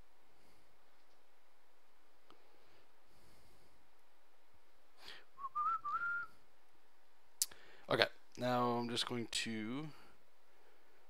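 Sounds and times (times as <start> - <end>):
person whistling rising notes: 5.2 - 6.4.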